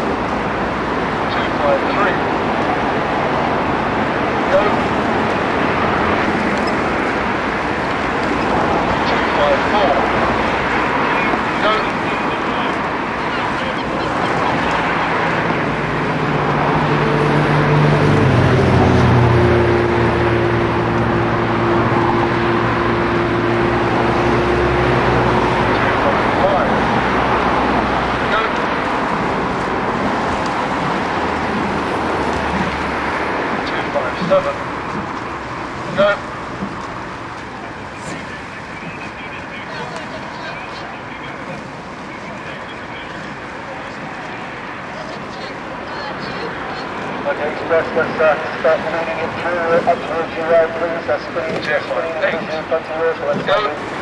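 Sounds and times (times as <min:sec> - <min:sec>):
engine passing by: 0:00.0 - 0:54.0
outdoor noise: 0:00.0 - 0:54.0.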